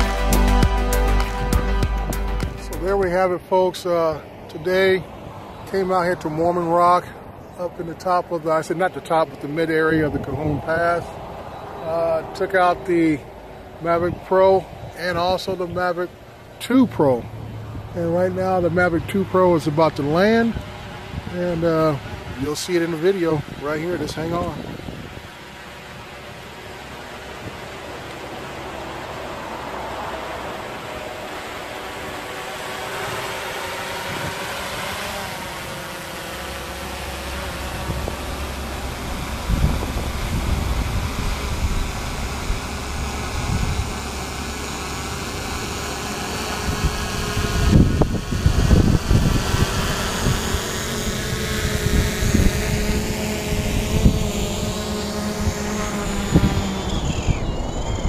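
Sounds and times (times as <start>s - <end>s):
drone propeller whine: 0.0s - 58.0s
low rumbling buffets: 0.0s - 58.0s.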